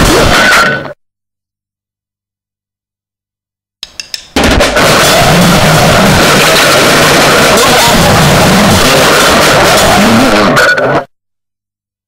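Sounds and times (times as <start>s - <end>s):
distorted noise music with squeals: 4.6s - 11.1s.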